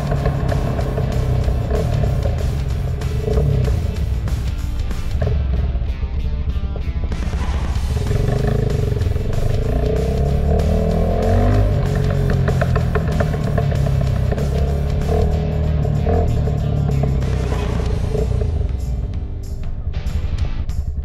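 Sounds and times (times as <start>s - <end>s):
background music: 0.0s - 21.0s
motorcycle engine accelerating: 0.0s - 21.0s.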